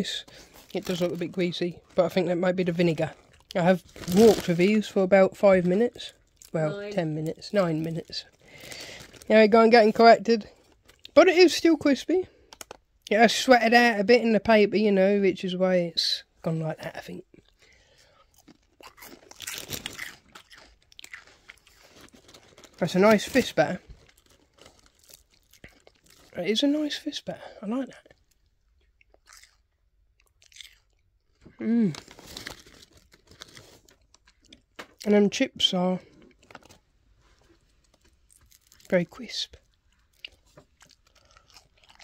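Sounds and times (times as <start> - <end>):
person speaking: 0.0 - 8.4, 9.2 - 12.4, 22.8 - 23.8, 26.3 - 28.1, 38.8 - 39.6
person chewing crispy batter: 2.6 - 4.6, 6.1 - 6.6, 10.5 - 11.2, 17.3 - 26.4, 28.0 - 35.1, 36.0 - 42.0.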